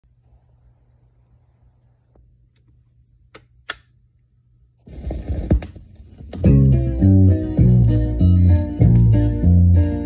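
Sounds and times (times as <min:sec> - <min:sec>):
vinyl crackle and pops: 0:04.8 - 0:07.1.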